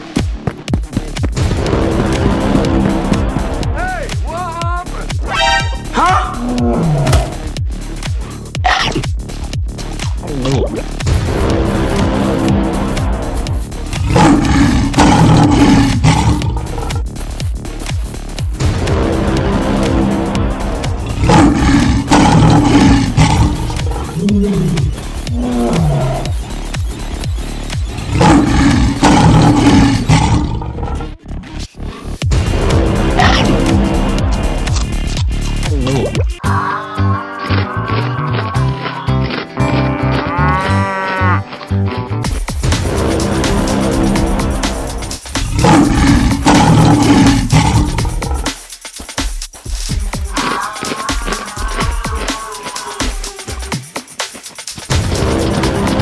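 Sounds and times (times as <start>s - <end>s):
background music: 0.0s - 56.0s
lion roaring and growling: 6.0s - 7.4s, 13.9s - 17.1s, 21.0s - 26.4s, 28.0s - 34.8s, 42.8s - 48.6s
cow mooing: 39.6s - 41.5s.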